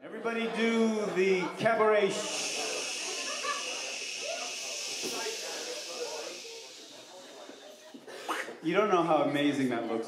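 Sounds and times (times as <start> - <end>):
steady hiss: 1.9 - 8.0.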